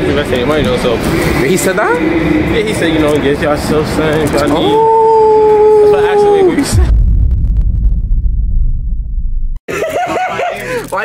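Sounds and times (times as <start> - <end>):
man talking: 0.0 - 4.9.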